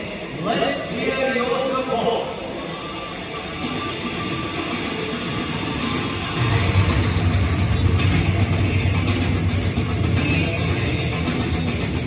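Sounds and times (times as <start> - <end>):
rock music over loudspeakers: 0.0 - 12.0.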